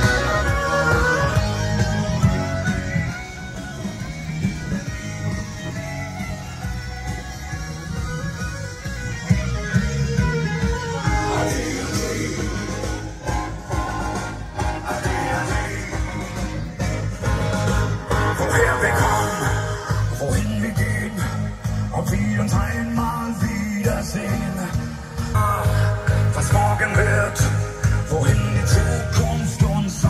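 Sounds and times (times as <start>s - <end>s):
song with guitar and singing: 0.0s - 30.0s.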